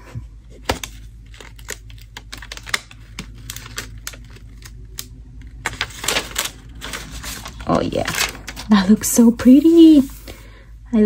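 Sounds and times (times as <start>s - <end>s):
paper stickers clicking and rustling: 0.6s - 9.0s.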